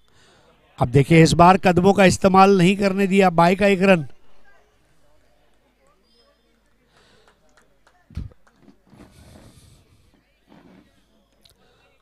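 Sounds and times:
distant indistinct voices: 4.1 - 12.0.

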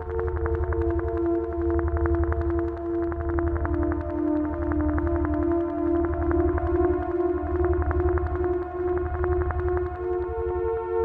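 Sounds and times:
pulsing low bass: 0.0 - 10.9.

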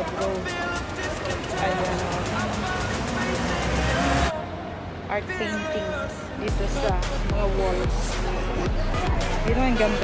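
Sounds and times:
indistinct voices: 0.0 - 10.0
street traffic rumble: 0.0 - 10.0.

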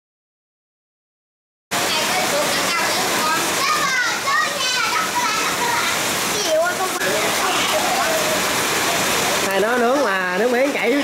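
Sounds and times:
voices talking over one another: 1.8 - 10.0.

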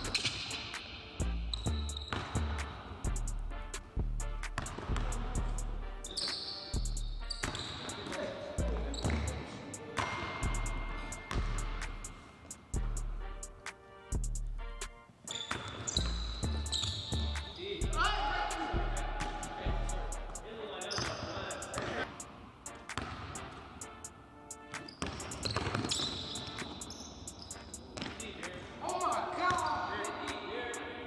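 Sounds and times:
music bass notes: 1.2 - 6.2, 10.4 - 12.1, 12.8 - 15.0, 16.1 - 20.5
basketballs bouncing on wood floor: 4.5 - 5.4, 7.4 - 9.4, 10.0 - 12.0, 23.0 - 23.3, 25.0 - 26.8, 28.0 - 28.5
players' voices: 7.8 - 11.7, 17.3 - 22.2, 27.7 - 31.0.

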